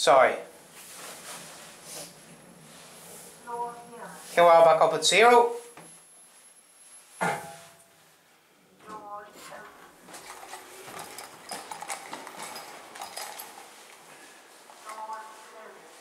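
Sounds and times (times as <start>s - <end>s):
lift doors sliding open: 9.7s - 14.7s
person speaking: 14.8s - 16.0s.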